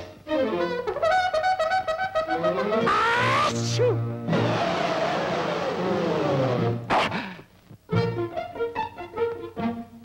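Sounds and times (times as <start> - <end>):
brass music: 0.7 - 4.9
cartoon lion roar: 2.8 - 6.3.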